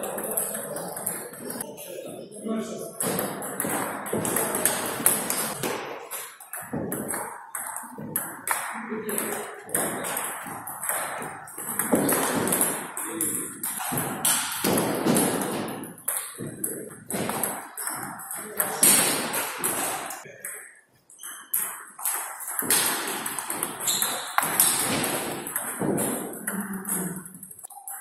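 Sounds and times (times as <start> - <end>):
table tennis ball hits: 3.0 - 20.7, 21.3 - 28.0.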